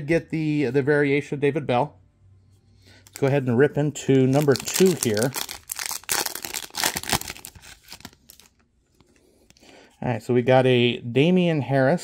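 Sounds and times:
wrapper and cards rustling: 4.1 - 8.6
foil wrapper ripped and crinkled: 4.3 - 8.5.

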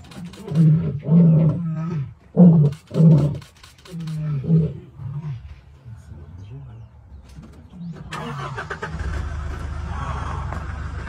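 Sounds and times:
low rumble: 7.0 - 11.0
vehicle engine running: 7.2 - 11.0.

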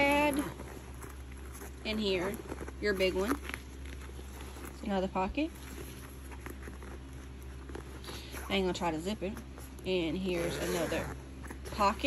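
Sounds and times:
zipper pulls clicking: 0.0 - 4.9, 9.4 - 12.0
handbag rustling: 0.0 - 12.0
low steady hum: 0.0 - 12.0.

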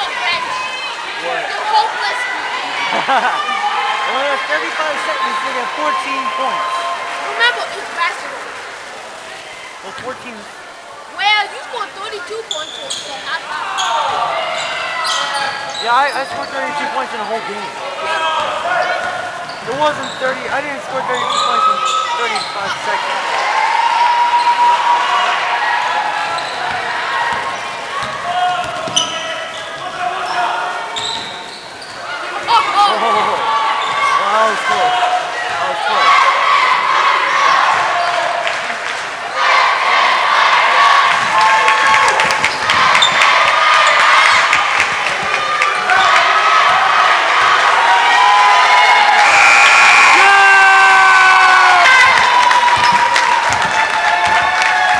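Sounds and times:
voices calling out: 0.0 - 53.5.

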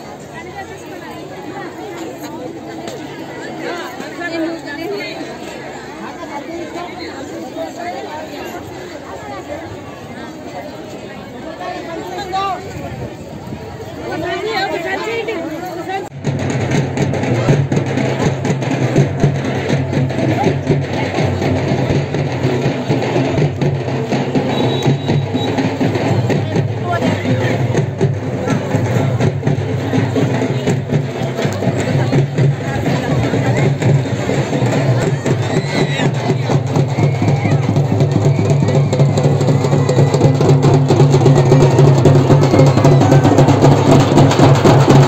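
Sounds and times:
crowd voices: 0.0 - 45.0
loud music with drum beat: 16.1 - 45.0.

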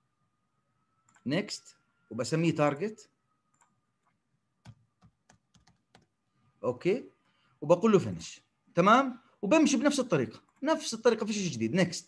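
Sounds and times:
keyboard keystrokes: 4.6 - 6.1.

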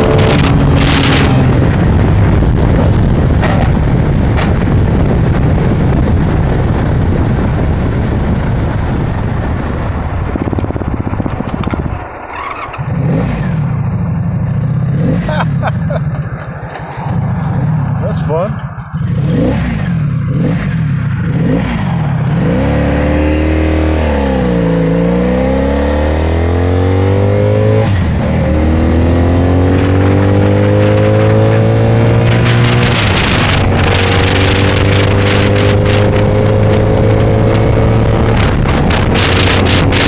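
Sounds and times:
motorcycle engine accelerating: 0.0 - 40.0
wind buffeting microphone: 0.0 - 40.0.

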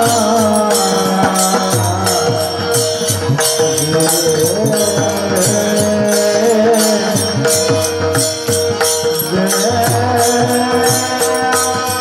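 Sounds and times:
men singing devotional song: 0.0 - 12.0.

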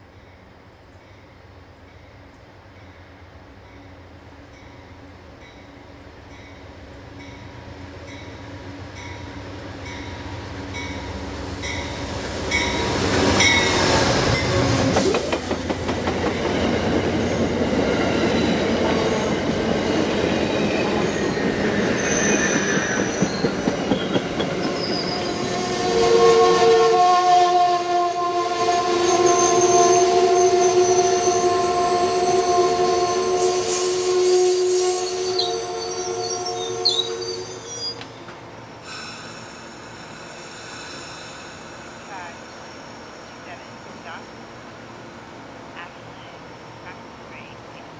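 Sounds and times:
train wheel and rail noise: 0.0 - 47.9
train horn chord: 25.3 - 37.6.

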